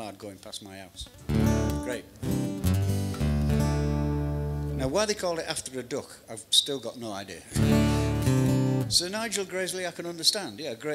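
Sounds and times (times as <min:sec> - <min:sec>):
man speaking: 0:00.0 - 0:02.2, 0:04.7 - 0:07.6, 0:08.8 - 0:10.9
guitar chord ringing: 0:01.2 - 0:05.1, 0:07.6 - 0:09.0.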